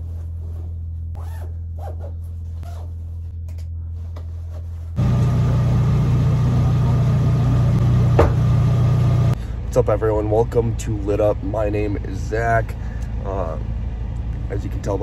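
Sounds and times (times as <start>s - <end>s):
padded coveralls rustling: 0.0s - 3.3s
steady low hum: 0.0s - 15.0s
zipper pulls: 1.2s - 3.1s
truck engine idling: 5.0s - 15.0s.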